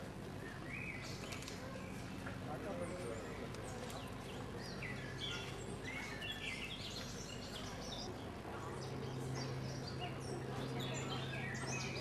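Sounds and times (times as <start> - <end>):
steady low background hum: 0.0 - 12.0
small birds chirping: 0.4 - 12.0.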